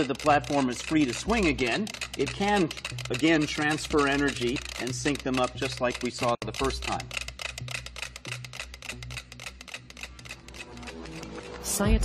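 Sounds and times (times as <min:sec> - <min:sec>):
metronomes ticking: 0:00.0 - 0:12.0.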